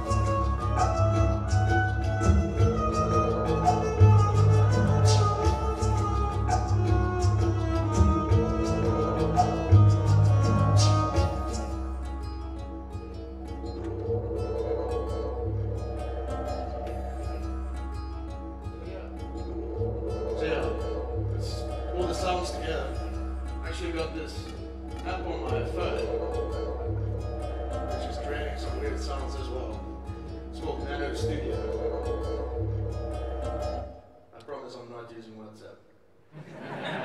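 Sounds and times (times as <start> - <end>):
low bass: 0.0 - 33.9
plucked-string pattern: 0.0 - 34.0
odd electronic sounds: 0.0 - 34.3
sustained tones: 0.0 - 34.4
low drone: 13.6 - 34.1.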